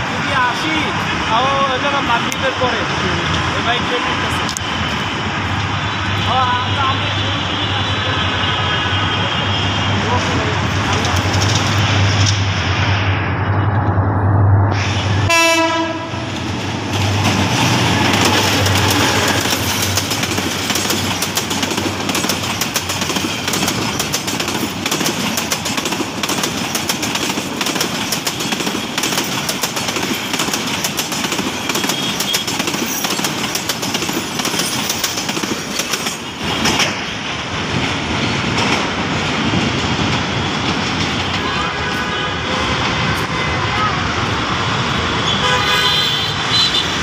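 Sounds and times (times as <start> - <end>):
locomotive engine drone: 2.8 - 22.6
train wheels clattering over rail joints: 10.4 - 12.5, 16.4 - 41.5
locomotive horn: 15.2 - 16.3, 17.1 - 19.7, 41.4 - 44.0, 45.2 - 47.0.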